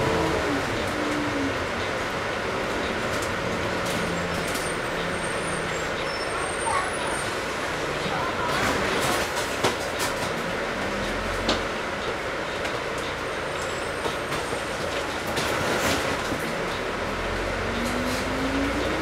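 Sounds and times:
bus engine and road noise: 0.0s - 19.0s.

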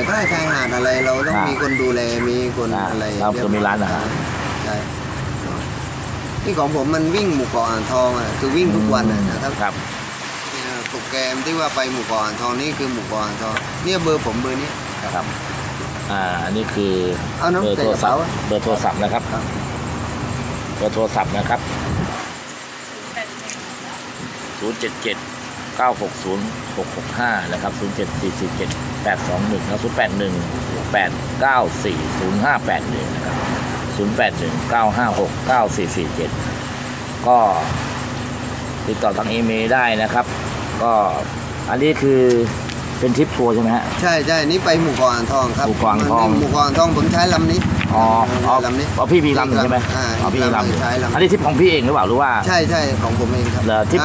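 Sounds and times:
men talking: 0.0s - 19.8s, 20.6s - 22.3s, 24.4s - 37.9s, 38.7s - 54.0s
low motor hum: 0.0s - 22.2s, 24.1s - 54.0s.

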